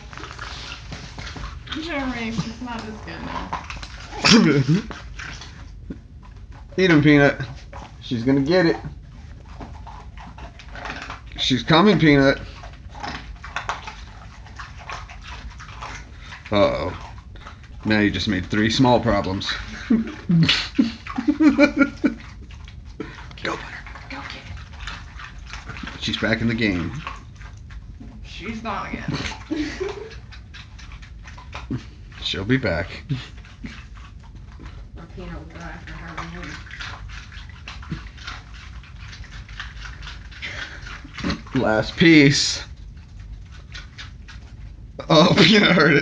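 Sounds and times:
dog crunching ice: 0.0 - 5.7, 23.2 - 27.6.

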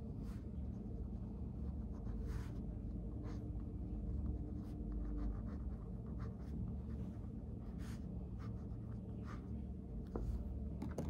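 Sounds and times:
low background hum: 0.0 - 11.0
pen scratching on paper: 0.2 - 10.5.

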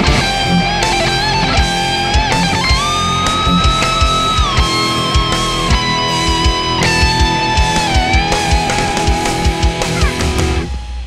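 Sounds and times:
overdriven electric guitar lead: 0.0 - 11.0
rock backing track: 0.0 - 11.0.

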